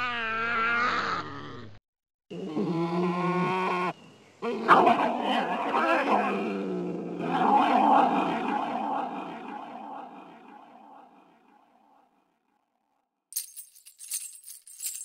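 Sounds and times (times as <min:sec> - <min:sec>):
growling roaring voice: 0:04.4 - 0:09.3.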